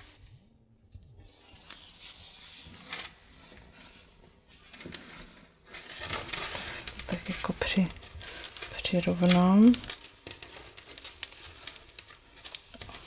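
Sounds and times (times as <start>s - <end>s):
lace rustling: 3.8s - 13.0s.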